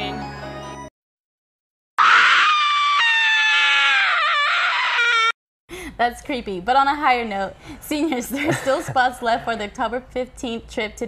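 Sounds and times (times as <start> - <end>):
long high-pitched scream: 2.0 - 5.4.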